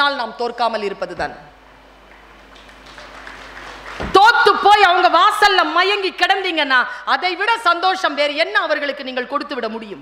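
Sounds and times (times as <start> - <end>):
audience applause: 2.1 - 4.2.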